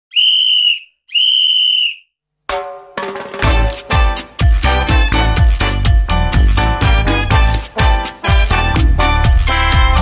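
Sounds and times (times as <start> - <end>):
long whistle blasts: 0.1 - 2.1
cha-cha-cha dance music: 3.4 - 10.0.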